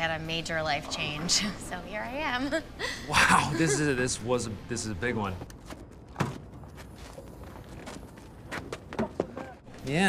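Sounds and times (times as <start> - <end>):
footsteps on pavement: 5.4 - 9.8.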